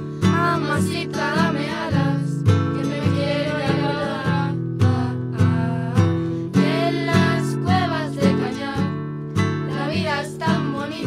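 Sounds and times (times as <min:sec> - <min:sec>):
acoustic guitars strumming: 0:00.0 - 0:11.0
girls singing: 0:00.2 - 0:09.0, 0:09.6 - 0:11.0.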